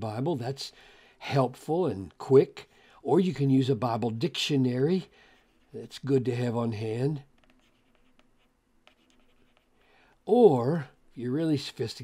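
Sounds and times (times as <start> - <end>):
stylus tapping and scratching on tablet: 5.3 - 10.0.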